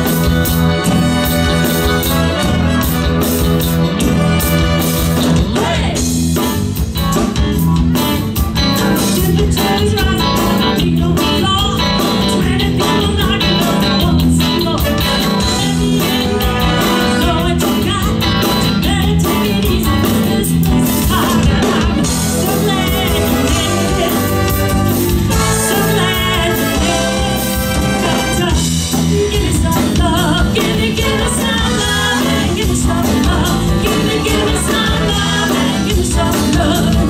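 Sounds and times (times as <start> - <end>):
horn band playing: 0.0 - 6.0, 14.8 - 17.9, 21.2 - 29.2, 30.6 - 36.1
person singing: 4.4 - 6.2, 7.8 - 37.0.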